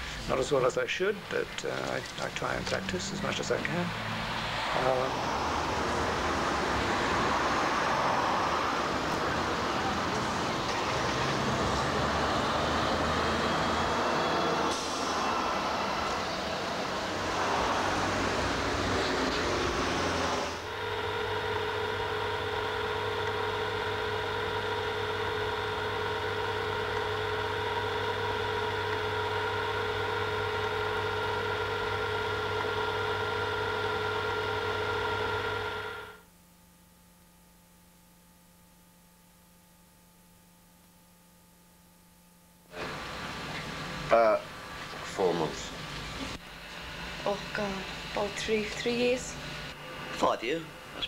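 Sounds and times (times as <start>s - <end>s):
street traffic noise: 0.0s - 36.2s, 42.7s - 51.0s
steady hum of fixed tones: 0.0s - 51.0s.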